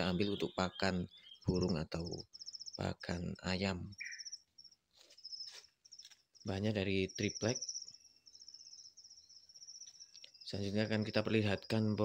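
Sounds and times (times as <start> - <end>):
crickets chirping: 2.2 - 3.1, 3.9 - 12.0.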